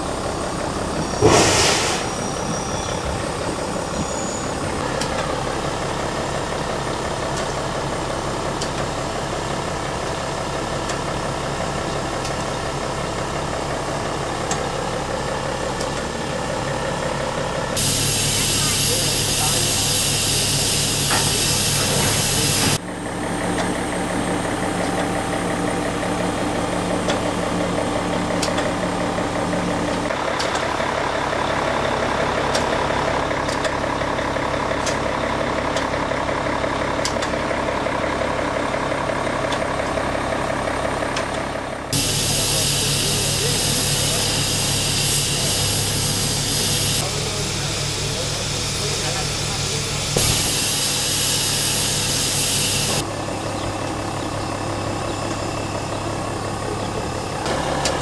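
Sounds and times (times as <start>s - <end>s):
steady mechanical hum: 0.0s - 58.0s
loud hiss of escaping steam: 1.2s - 2.8s, 17.8s - 22.8s, 42.0s - 53.0s.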